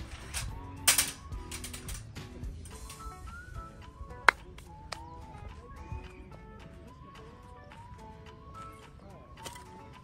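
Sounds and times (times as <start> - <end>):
metal rods clinking and clanking: 0.0 - 3.2.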